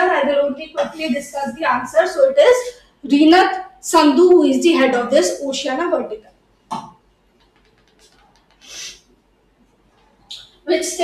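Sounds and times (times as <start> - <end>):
faint clicks: 7.3 - 8.8
rubbing brushing noise: 7.4 - 9.1.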